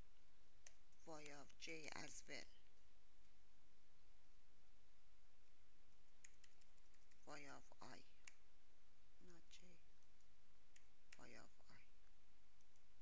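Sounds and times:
computer keyboard typing: 6.1 - 7.3.

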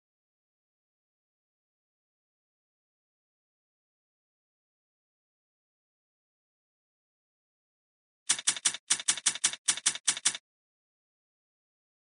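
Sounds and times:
typewriter key clicks: 8.3 - 10.4.

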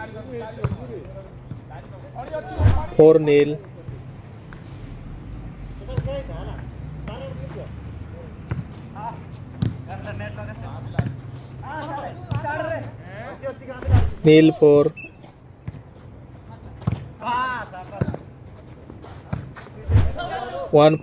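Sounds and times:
players' voices calling: 0.0 - 15.5, 19.0 - 21.0
volleyball slaps: 2.3 - 3.3, 13.8 - 14.4, 19.4 - 20.3.

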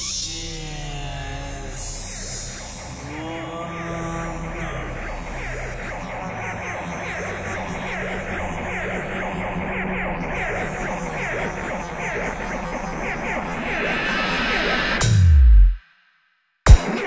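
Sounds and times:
sustained low drone: 0.0 - 15.6.

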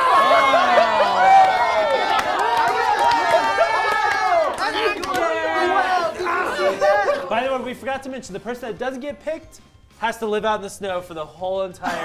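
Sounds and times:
group of people cheering: 0.0 - 7.4.

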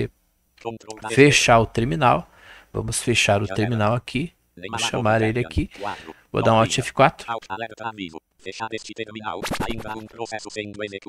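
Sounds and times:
synthesized voice speaking: 0.6 - 1.6, 4.6 - 11.0.

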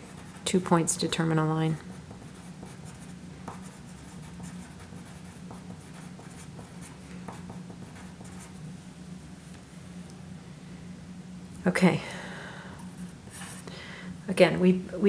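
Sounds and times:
low steady hum: 0.0 - 15.0
pencil scratching on paper: 2.0 - 8.6.

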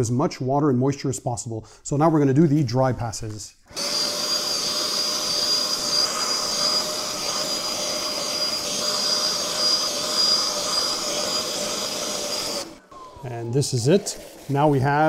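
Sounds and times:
suction tool over wet mat: 3.7 - 15.0
vacuum motor whining: 3.7 - 15.0.

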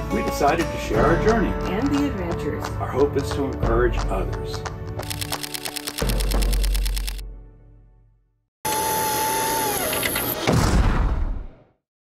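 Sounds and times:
camera shutter clicking: 5.0 - 7.2.

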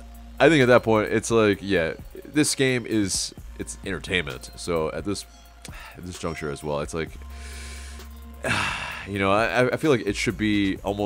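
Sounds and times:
man inhaling through mouth: 7.3 - 9.1.

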